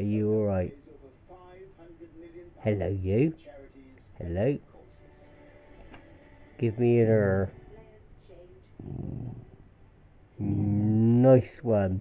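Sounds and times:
dog growling: 0:08.8 - 0:09.6.

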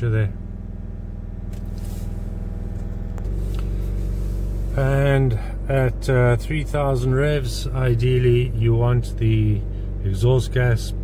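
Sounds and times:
diesel engine revving: 0:00.0 - 0:11.0.

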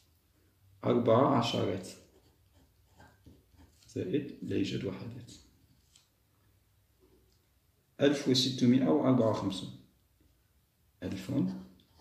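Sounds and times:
pen scratching while handwriting: 0:01.8 - 0:04.0.

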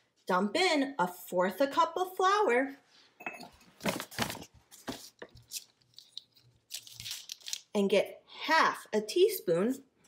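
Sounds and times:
paper rustling: 0:03.8 - 0:07.6.

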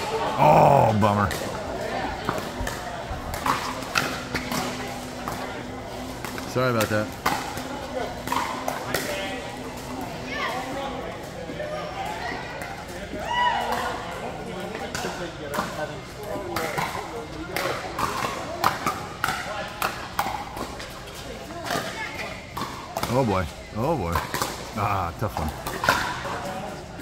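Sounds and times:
indistinct players' voices: 0:00.0 - 0:10.3.

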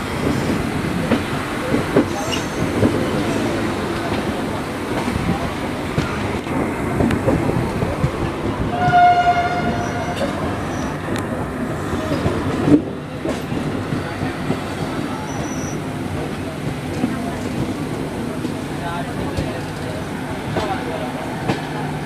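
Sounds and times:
train rumble and rail clatter: 0:00.0 - 0:22.0
locomotive horn: 0:08.7 - 0:10.4.

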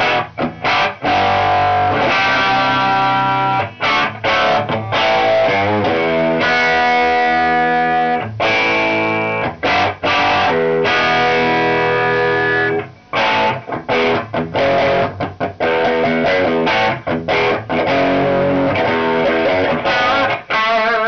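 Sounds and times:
overdriven electric guitar chords: 0:00.0 - 0:21.0.

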